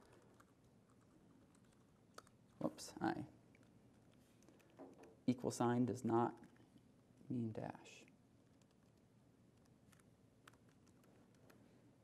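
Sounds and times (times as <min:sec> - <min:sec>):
faint laptop keyboard typing: 0:00.0 - 0:02.7, 0:03.5 - 0:05.2, 0:06.2 - 0:06.9, 0:08.0 - 0:12.0.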